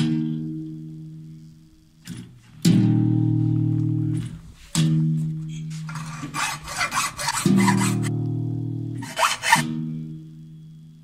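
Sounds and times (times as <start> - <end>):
hacksaw rasping strokes: 5.8 - 8.1, 9.0 - 9.7.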